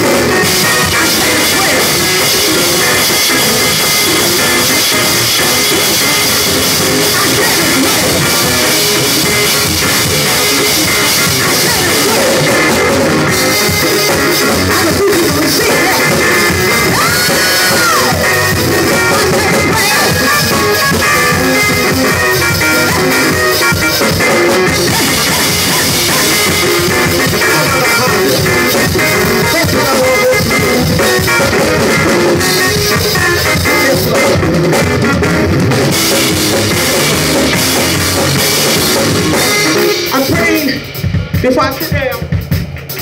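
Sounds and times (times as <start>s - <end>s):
sustained keyboard chords: 0.0s - 42.4s
bass: 0.0s - 43.0s
drum kit played fast and hard: 0.0s - 43.0s
high note sliding down: 15.9s - 29.4s.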